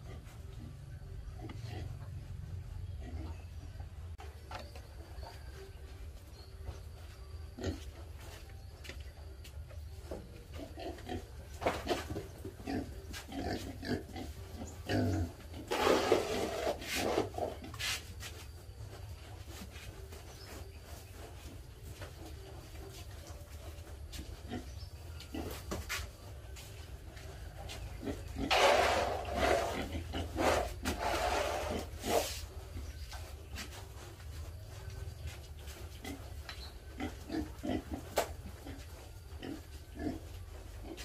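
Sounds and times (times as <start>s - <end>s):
pigs grunting: 0.0s - 2.3s, 10.6s - 17.7s, 28.0s - 32.4s, 36.0s - 41.0s.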